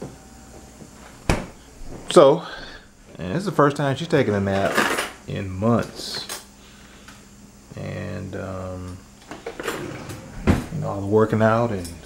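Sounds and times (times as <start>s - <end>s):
door shutting knock: 1.3s - 1.6s, 10.4s - 10.8s.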